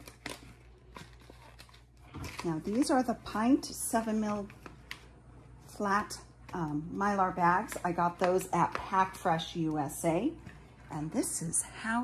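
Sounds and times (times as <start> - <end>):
plastic bag crinkling: 0.0 - 3.1
low steady hum: 0.0 - 12.0.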